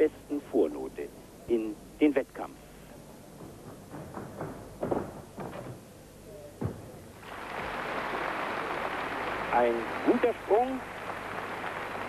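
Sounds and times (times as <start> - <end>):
thuds on springboard and vault: 3.4 - 5.9, 6.6 - 7.0
crowd applause: 7.2 - 12.0.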